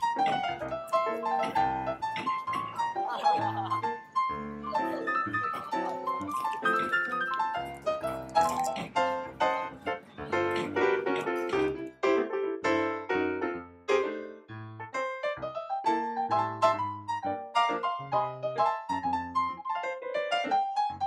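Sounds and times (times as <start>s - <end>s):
upbeat piano music with bass: 0.0s - 21.0s.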